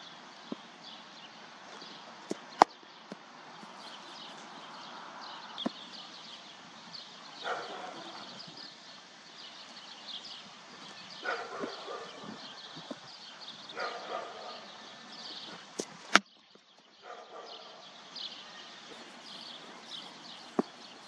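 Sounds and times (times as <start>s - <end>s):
birds chirping: 0.0s - 21.0s.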